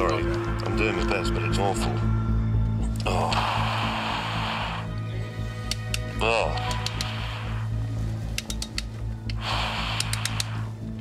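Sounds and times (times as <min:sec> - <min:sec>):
low background music: 0:00.0 - 0:11.0
hiss inside helmet: 0:03.2 - 0:05.0, 0:06.6 - 0:07.9, 0:09.4 - 0:11.0
faint clicks: 0:05.6 - 0:07.2, 0:08.3 - 0:10.7.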